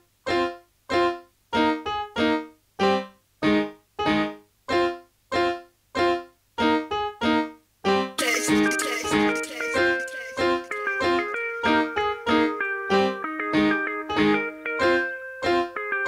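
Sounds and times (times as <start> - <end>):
piano-like keyboard chords: 0.3 - 7.5, 8.2 - 16.0.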